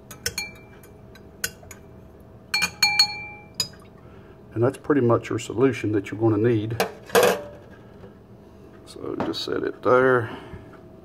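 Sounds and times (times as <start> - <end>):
teaspoon clinking on metal sink: 0.0 - 1.9, 2.5 - 3.9.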